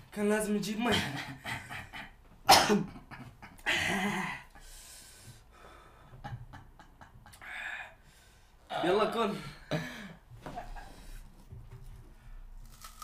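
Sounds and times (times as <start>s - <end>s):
man coughing: 2.4s - 3.1s, 9.6s - 10.2s.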